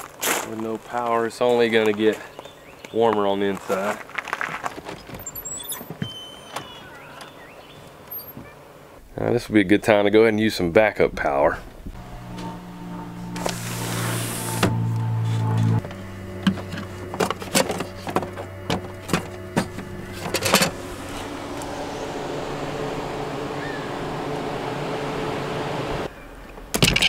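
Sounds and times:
fan-like whir: 11.8s - 26.1s
steady electrical hum: 11.8s - 26.1s.

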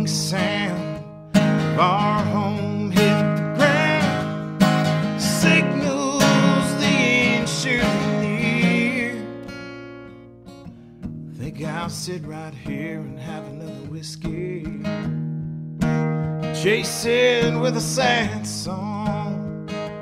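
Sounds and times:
man singing: 0.0s - 9.4s, 11.3s - 15.2s, 15.9s - 20.0s
acoustic guitar strumming blues: 0.0s - 20.0s.

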